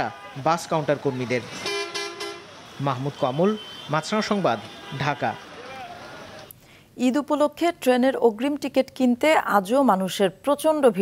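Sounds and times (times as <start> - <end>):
bus horn blast: 1.6 - 2.6, 3.3 - 5.6
people talking: 7.0 - 11.0.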